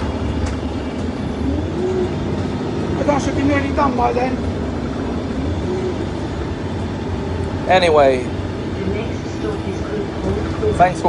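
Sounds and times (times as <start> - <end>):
vehicle cabin rumble: 0.0 - 11.0
man speaking: 3.0 - 4.4.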